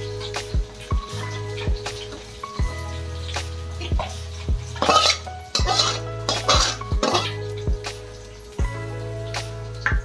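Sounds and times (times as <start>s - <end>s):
background music with steady beat: 0.0s - 10.0s
steel lid clinking against bowl: 4.8s - 7.3s.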